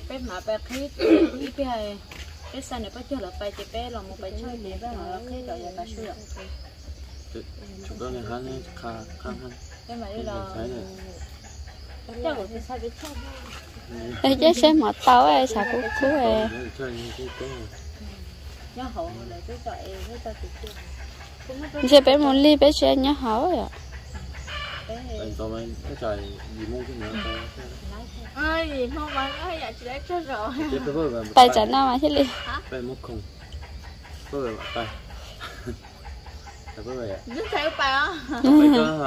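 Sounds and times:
chickens clucking: 0.0s - 39.0s
steady low hum: 0.0s - 39.0s.

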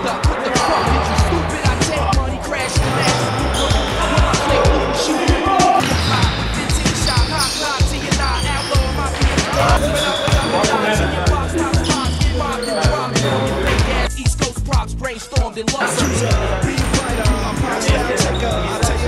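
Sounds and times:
hip-hop track with heavy bass: 0.0s - 19.0s.

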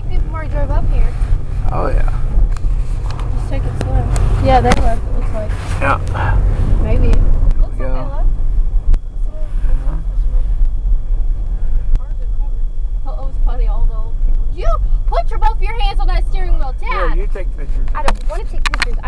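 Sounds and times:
car engine and tyres rumbling: 0.0s - 19.0s.

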